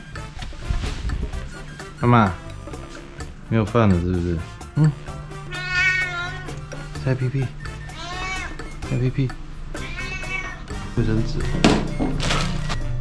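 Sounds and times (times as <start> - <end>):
cat meowing: 5.4 - 6.6, 7.8 - 8.9, 9.7 - 10.8.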